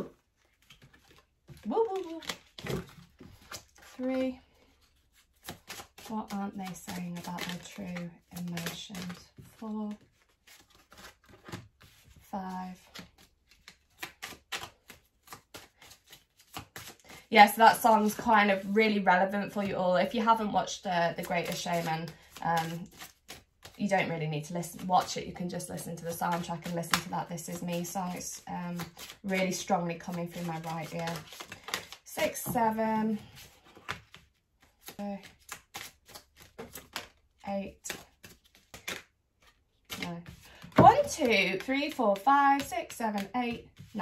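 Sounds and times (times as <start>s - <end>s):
cards being shuffled: 0.0s - 18.7s, 19.3s - 44.0s.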